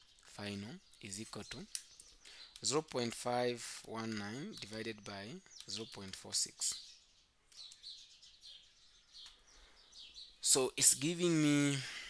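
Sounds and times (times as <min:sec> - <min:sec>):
faint high bird chirps: 0:00.0 - 0:11.9.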